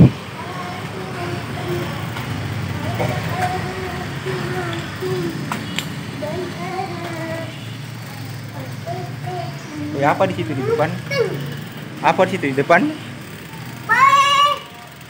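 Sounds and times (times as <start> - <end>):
distant voice wavering: 0.0 - 11.8
bicycles rolling on pavement: 0.0 - 15.0
sharp clicks: 4.6 - 6.0.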